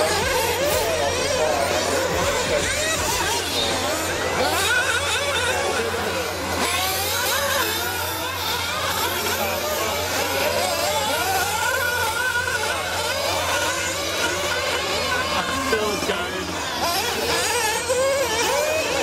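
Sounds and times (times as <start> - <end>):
rc car engines whining: 0.0 - 19.0.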